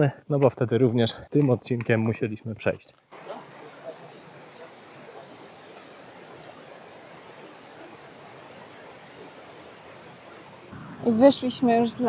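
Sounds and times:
stream rushing over rocks: 3.1s - 10.8s.

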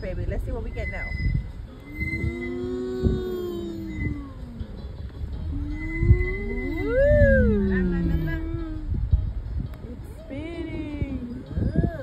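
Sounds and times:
slow gliding tones: 0.3s - 9.5s.

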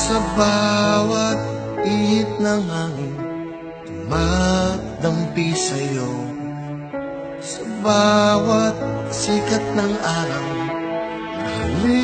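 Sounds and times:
man singing a ballad: 0.0s - 6.8s, 7.4s - 12.0s
soft backing music: 0.0s - 12.0s.

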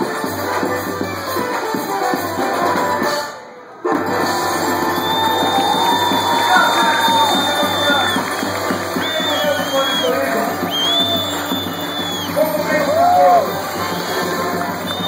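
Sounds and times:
audience voices: 0.0s - 15.0s
drum beat: 4.4s - 15.0s.

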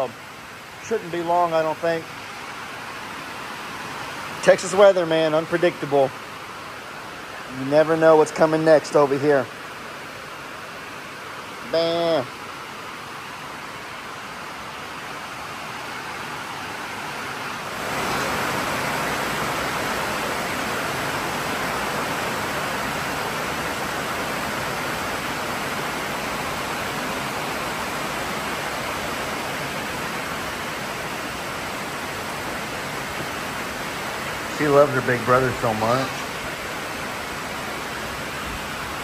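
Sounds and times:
heavy rain on a metal roof: 0.0s - 39.0s.

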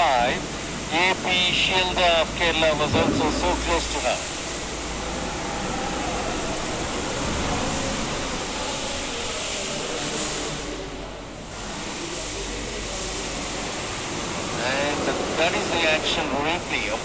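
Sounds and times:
steady rushing hiss: 0.0s - 10.8s, 11.5s - 17.0s.

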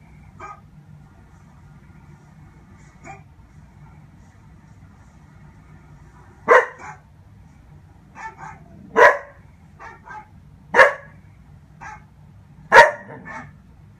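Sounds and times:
puppy barking: 0.4s - 0.7s, 3.0s - 3.3s, 6.4s - 7.1s, 8.2s - 11.2s, 11.8s - 12.1s, 12.7s - 13.6s.

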